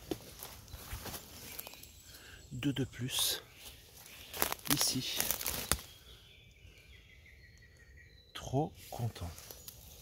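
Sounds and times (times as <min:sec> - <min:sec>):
twigs and leaves rustling: 0:00.0 - 0:06.9, 0:08.7 - 0:10.0
twig snapping: 0:04.2 - 0:06.0.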